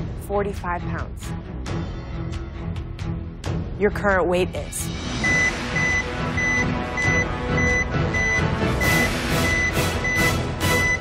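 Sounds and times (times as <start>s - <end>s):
drum-heavy suspense music: 0.0s - 11.0s
high electronic beeps: 5.2s - 11.0s.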